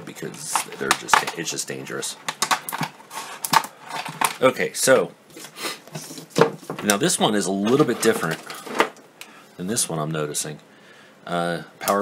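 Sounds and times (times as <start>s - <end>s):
plastic packaging crackling: 0.0s - 4.5s.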